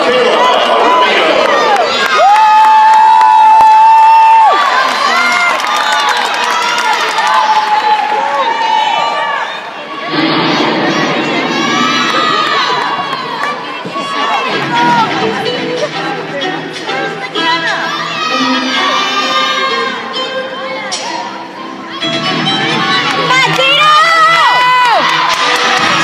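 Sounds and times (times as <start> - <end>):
women shouting and cheering: 0.6 - 26.0.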